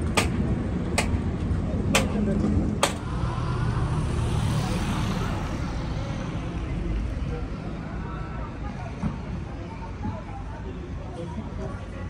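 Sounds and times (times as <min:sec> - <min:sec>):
street traffic rumble: 0:00.0 - 0:12.0
vehicle passing: 0:02.9 - 0:08.6.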